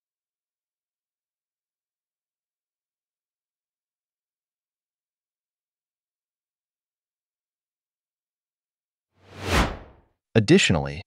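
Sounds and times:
whoosh sound effect: 9.2 - 10.0.

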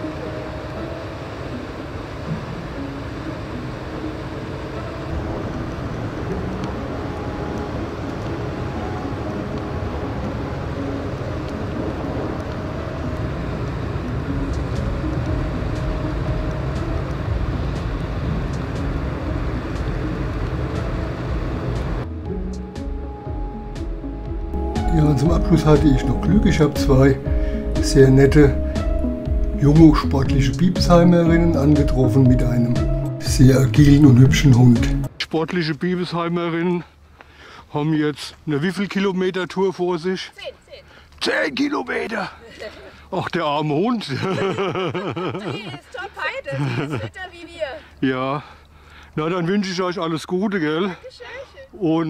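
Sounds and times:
ship engine rumble: 0.0 - 35.2
background music: 0.0 - 35.3, 44.0 - 47.9.

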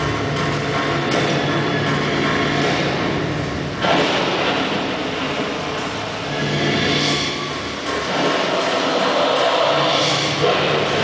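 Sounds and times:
loud rumbling sound effects: 0.0 - 11.0.

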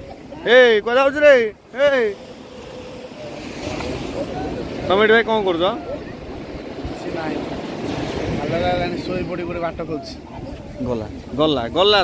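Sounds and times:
faint voices: 0.0 - 12.0
surf washing: 0.0 - 12.0
wind buffeting microphone: 0.0 - 12.0.

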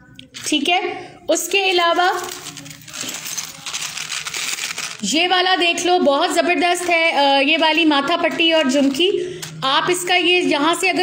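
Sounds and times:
plastic sleeve rustle: 1.5 - 5.4
small bells jingling and clinking: 1.9 - 5.0.

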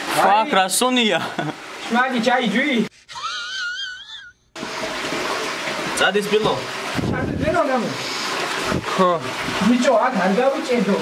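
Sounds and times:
person's high-pitched squeal: 3.1 - 4.5.

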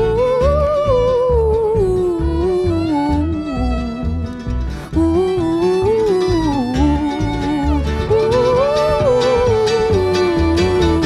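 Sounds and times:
acoustic guitar: 0.0 - 11.0
mandolin: 0.0 - 11.0
upright bass: 0.0 - 11.0
woman singing: 0.0 - 11.0.

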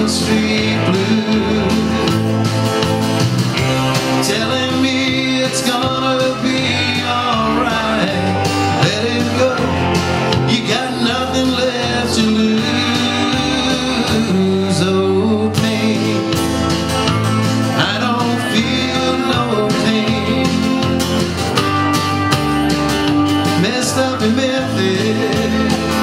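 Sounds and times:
man singing: 0.0 - 2.2, 3.8 - 16.7, 17.6 - 21.3, 23.4 - 26.0
bass line: 0.0 - 26.0
drums: 0.0 - 26.0
electric guitar: 0.0 - 26.0.

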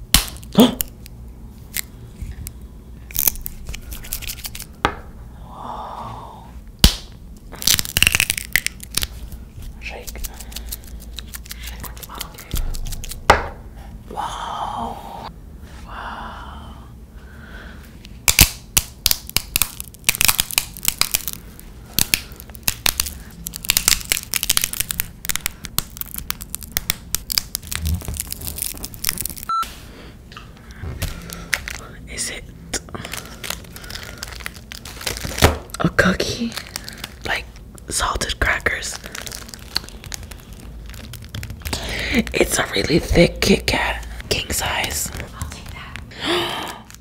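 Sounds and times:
glow sticks cracking: 0.2 - 4.8, 6.8 - 13.5, 18.0 - 29.5, 30.4 - 47.0.

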